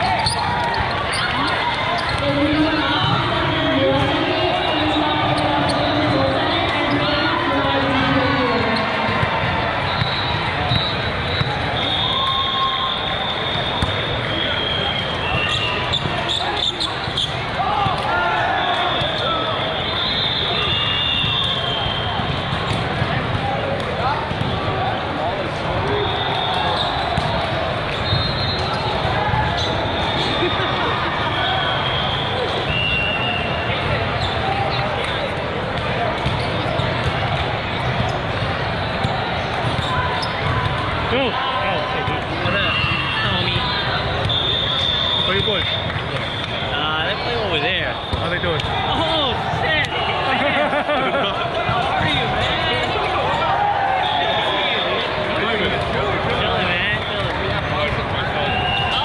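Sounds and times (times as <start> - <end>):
shoe squeaks: 0.0 - 2.2, 14.5 - 17.4, 39.6 - 40.5
din of many voices: 0.0 - 59.0
whistle tones: 9.9 - 16.8, 18.7 - 22.2, 28.0 - 28.8, 31.4 - 33.6, 42.6 - 46.6, 58.5 - 59.0.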